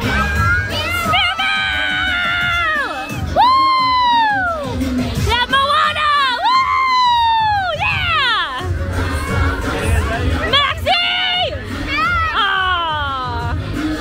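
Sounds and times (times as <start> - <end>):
children shrieking: 0.0 - 4.7, 11.1 - 13.4
crowd cheering: 0.0 - 14.0
parade music: 0.0 - 14.0.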